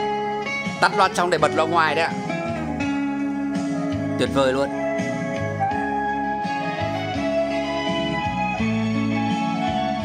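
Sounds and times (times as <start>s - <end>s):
guitar music from tape recorder: 0.0s - 10.0s.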